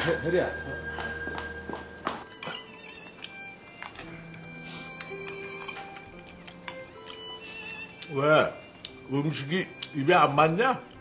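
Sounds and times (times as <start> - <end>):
soft background music: 0.0 - 11.0
footsteps on hard floor: 0.8 - 3.1.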